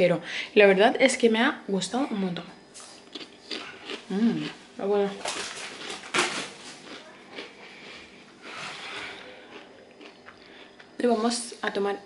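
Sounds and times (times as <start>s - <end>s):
crisps being crunched: 2.8s - 10.4s.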